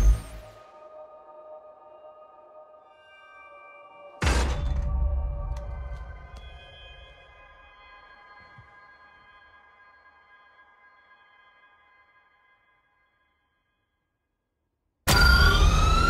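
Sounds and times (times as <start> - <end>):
rising electronic whines: 15.1 - 16.0.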